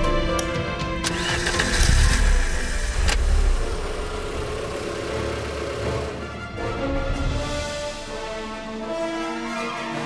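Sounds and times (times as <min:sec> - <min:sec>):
background music: 0:00.0 - 0:10.0
car engine starting: 0:01.0 - 0:06.4.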